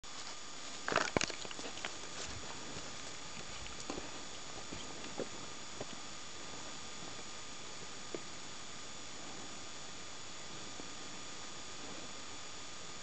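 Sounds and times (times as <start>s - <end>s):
footsteps crunching on gravel: 0.1s - 7.2s
steady hiss: 0.1s - 13.0s.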